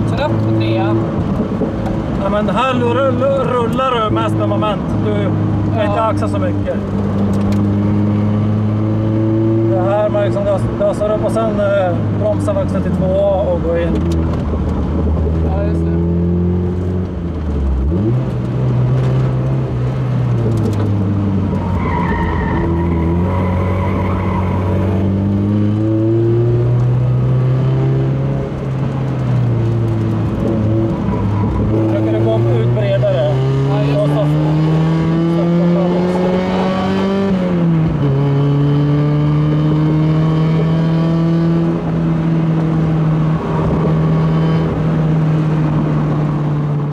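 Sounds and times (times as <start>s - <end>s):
car engine revving: 0.0s - 46.9s
tyres squealing: 21.6s - 25.0s.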